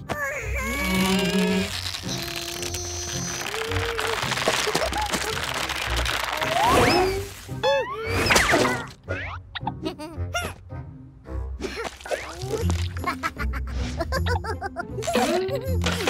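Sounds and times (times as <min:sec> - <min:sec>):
squeaky cartoon grunts and cries: 0:00.0 - 0:05.1
cartoon background music: 0:00.0 - 0:16.0.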